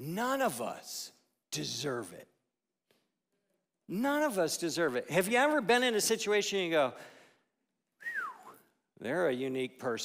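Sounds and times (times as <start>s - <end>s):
man whistling downward slide: 8.0s - 8.6s.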